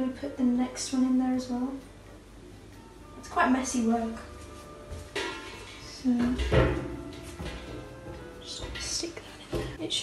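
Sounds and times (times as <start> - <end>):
woman speaking: 0.0 - 1.9, 3.2 - 4.4, 5.8 - 6.6, 8.4 - 10.0
faint background music: 0.0 - 10.0.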